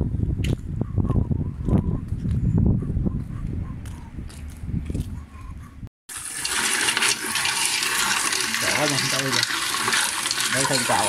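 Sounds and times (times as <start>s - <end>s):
person talking: 8.6s - 9.5s, 10.5s - 11.0s.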